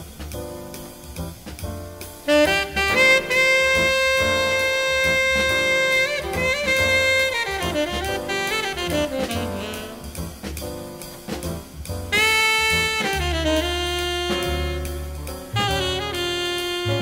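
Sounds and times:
bass: 0.0 - 17.0
drums: 0.0 - 17.0
jazz saxophone solo: 2.2 - 17.0.

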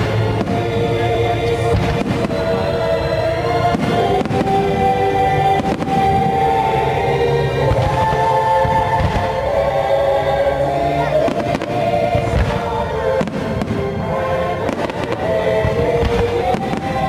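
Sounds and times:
fireworks bursting with bangs: 0.0 - 9.8, 11.0 - 17.0
orchestral music with held chords: 0.0 - 17.0.

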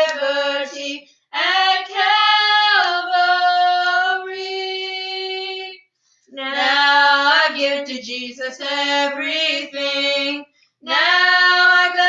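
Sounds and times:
two women singing a hymn: 0.0 - 12.0.

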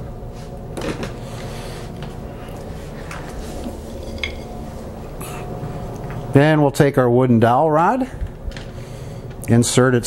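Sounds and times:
steady background hum: 0.0 - 10.0.

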